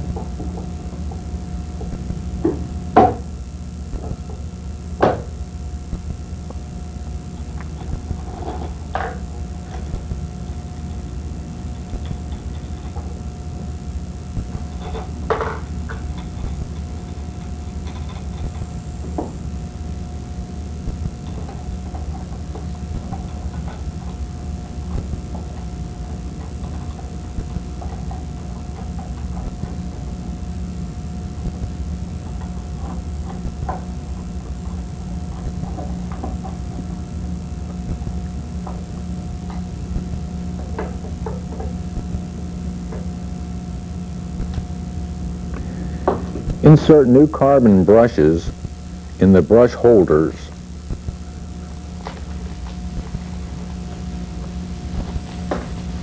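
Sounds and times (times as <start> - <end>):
low hum: 0.0 - 56.0.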